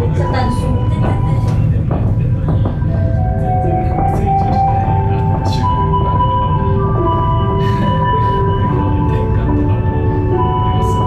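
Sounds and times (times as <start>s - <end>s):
gondola low rumble: 0.0s - 11.0s.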